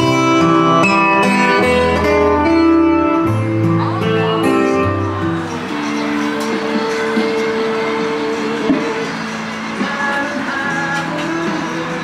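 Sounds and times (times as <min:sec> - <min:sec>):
guitar: 0:00.0 - 0:12.0
person singing: 0:00.0 - 0:12.0.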